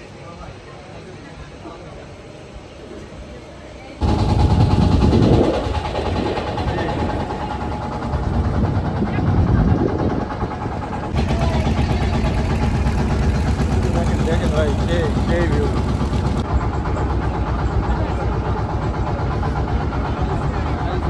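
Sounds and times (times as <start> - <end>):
people talking: 0.0 - 16.0, 16.9 - 21.0
boat engine running: 4.0 - 21.0.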